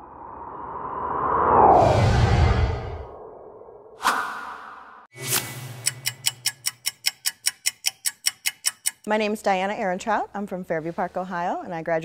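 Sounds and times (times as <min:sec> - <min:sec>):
whoosh: 0:00.0 - 0:05.8
fast stopwatch ticks: 0:05.7 - 0:09.1.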